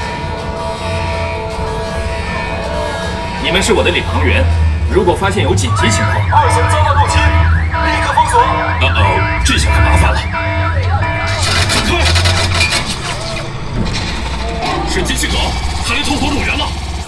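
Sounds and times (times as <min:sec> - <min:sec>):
alarm siren wailing: 0:00.0 - 0:17.0
bass-heavy music score: 0:00.0 - 0:17.0
crackling battle effects: 0:00.0 - 0:17.0.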